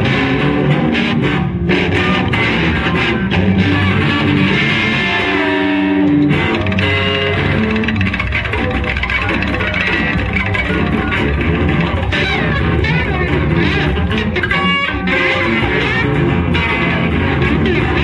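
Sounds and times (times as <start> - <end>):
electric guitars playing: 0.0 - 18.0.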